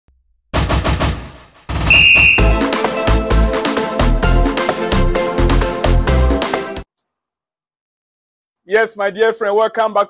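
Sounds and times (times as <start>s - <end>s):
high whistle-like tone: 1.9s - 2.6s
upbeat electronic music: 1.9s - 6.8s.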